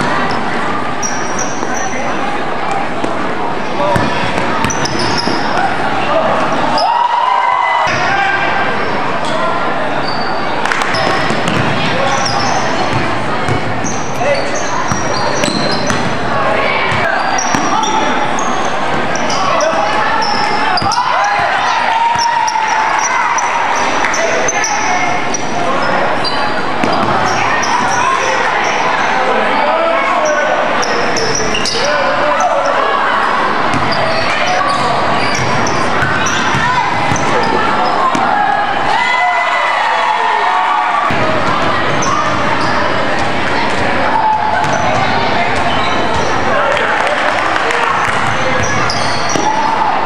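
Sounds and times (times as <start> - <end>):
sneaker squeaks: 0.0 - 2.2, 3.0 - 5.8, 8.8 - 29.2, 30.1 - 32.8, 33.6 - 38.4, 41.1 - 46.5, 48.0 - 49.9
crowd chattering: 0.0 - 50.0.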